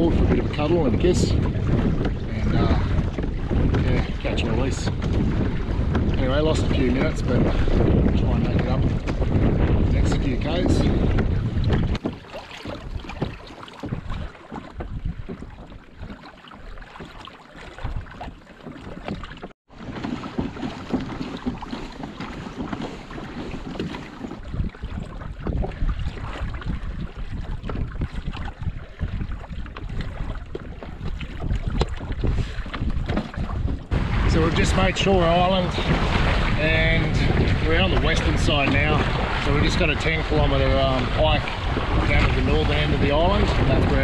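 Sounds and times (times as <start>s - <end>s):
water splashing against hull: 0.0s - 44.0s
wind buffeting microphone: 0.0s - 44.0s.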